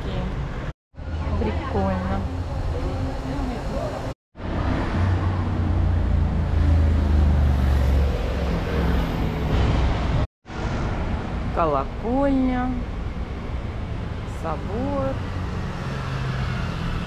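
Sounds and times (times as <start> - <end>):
cars passing: 0.0 - 17.0.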